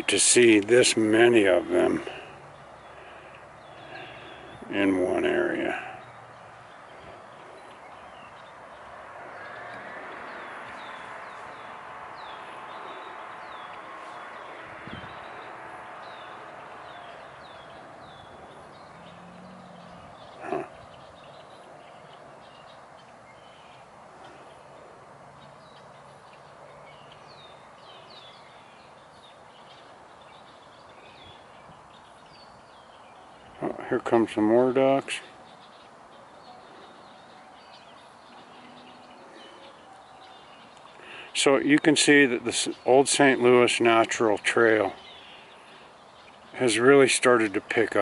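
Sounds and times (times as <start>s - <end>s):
steady hiss: 0.0s - 5.8s
small birds chirping: 0.0s - 48.0s.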